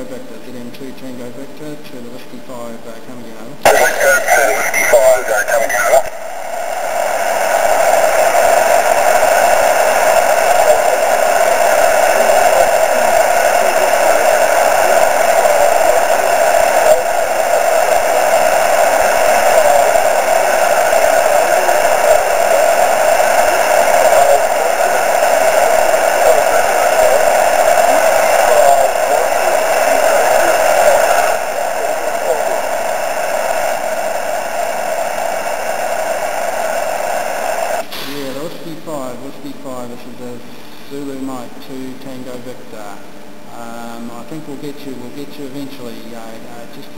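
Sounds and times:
radio receiver hiss: 3.6 - 46.4.

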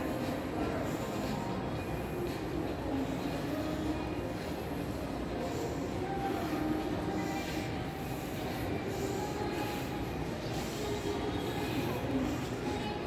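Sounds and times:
mall background noise: 0.0 - 13.0.

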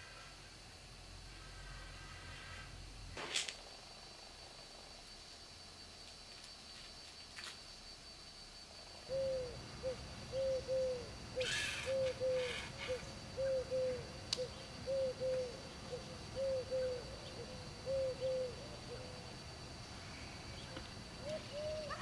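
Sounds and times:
dove cooing: 9.1 - 19.3, 21.2 - 22.0.

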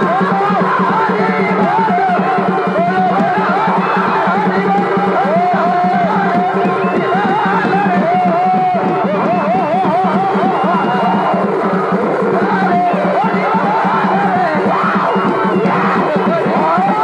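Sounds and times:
continuous drumming: 0.0 - 17.0
crowd noise: 0.0 - 17.0
shehnai trilled melody: 0.0 - 17.0.

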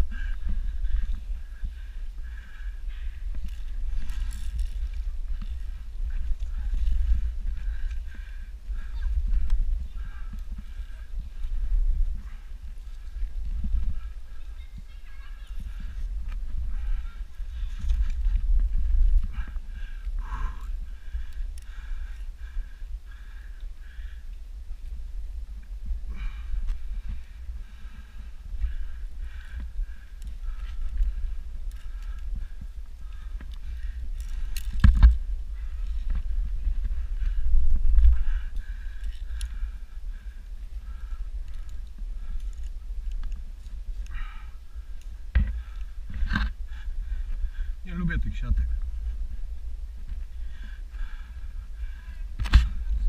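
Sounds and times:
low rumble of moving microphone: 0.0 - 53.0.

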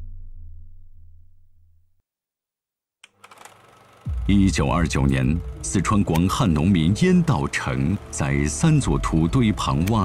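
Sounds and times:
film projector clatter: 3.1 - 4.1, 4.9 - 10.0.

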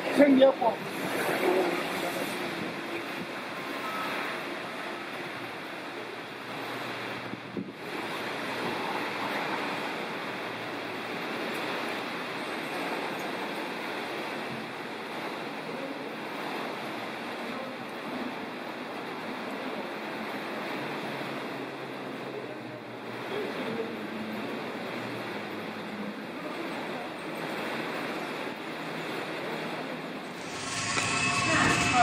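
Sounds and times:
rain falling on wet pavement: 0.0 - 30.3.

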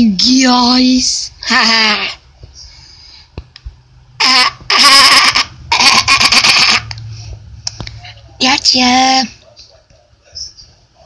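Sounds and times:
person laughing loudly: 4.2 - 7.0.

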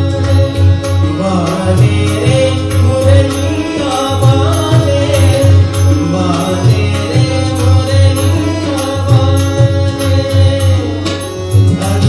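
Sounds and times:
harmonium drone: 0.0 - 12.0
tabla rhythm: 0.0 - 12.0.

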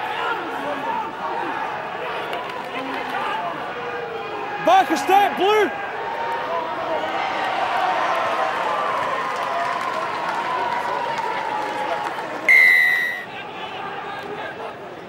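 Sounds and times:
stadium crowd cheering: 0.0 - 15.0
referee's whistle blast: 12.5 - 13.3.

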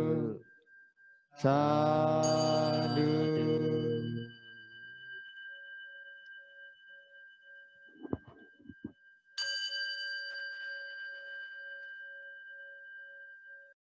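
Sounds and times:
small metal bell ringing: 0.0 - 13.8.

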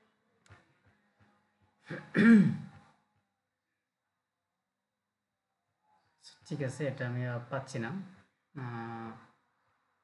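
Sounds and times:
man clearing his throat: 1.9 - 2.8.

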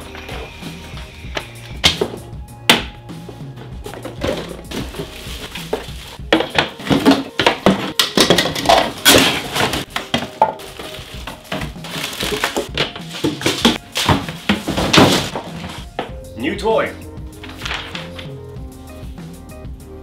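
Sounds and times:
background music with steady tones: 0.0 - 20.0
cardboard and packaging rustling: 3.2 - 16.2, 17.3 - 18.4
plastic parts knocking: 3.8 - 16.2.

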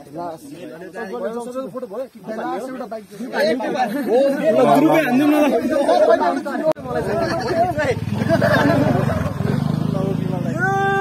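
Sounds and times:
young men talking over one another: 0.0 - 11.0.

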